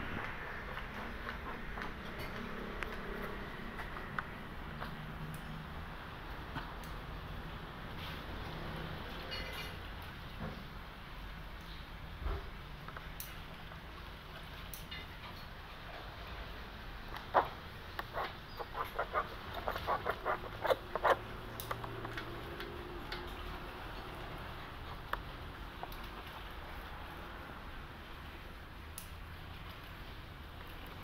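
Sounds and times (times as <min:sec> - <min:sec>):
faint steady background noise: 0:00.0 - 0:31.0.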